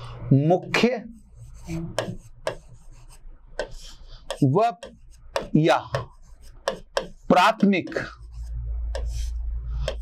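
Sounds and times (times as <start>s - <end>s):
scratchy writing strokes on board: 0.6s - 10.0s.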